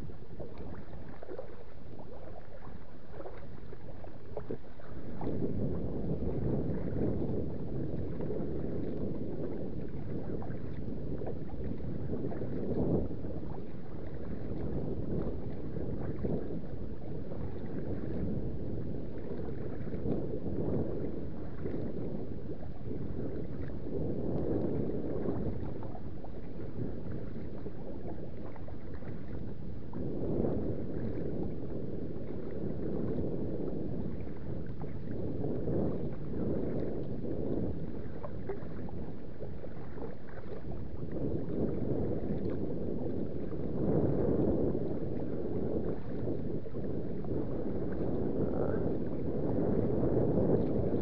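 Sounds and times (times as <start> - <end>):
water lapping against kayak hull: 0.0 - 51.0
wind buffeting microphone: 0.0 - 51.0.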